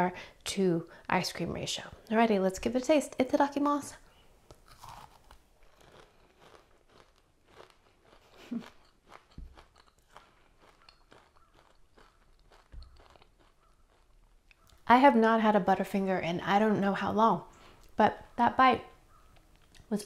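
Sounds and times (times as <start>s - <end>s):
crunchy chewing: 4.5s - 14.9s.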